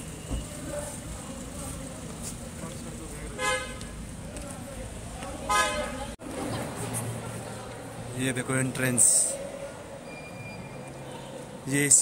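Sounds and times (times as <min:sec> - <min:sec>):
crowd chatter: 0:00.0 - 0:12.0
car horn honking: 0:03.4 - 0:03.8, 0:05.5 - 0:06.1.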